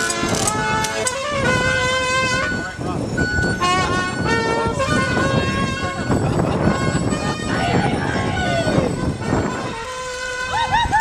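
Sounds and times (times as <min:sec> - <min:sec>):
street band with accordion: 0:00.0 - 0:11.0.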